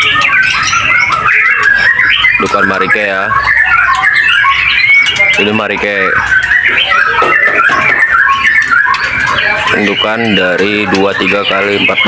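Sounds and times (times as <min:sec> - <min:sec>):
birds chirping and whistling: 0:00.0 - 0:12.0.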